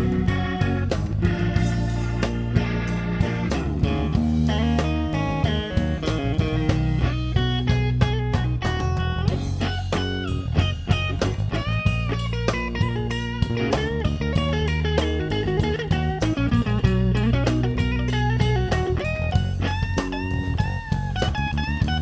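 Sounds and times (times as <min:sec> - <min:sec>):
bass guitar: 0:00.0 - 0:22.0
drum kit beat: 0:00.0 - 0:22.0
electric guitar solo: 0:00.0 - 0:22.0.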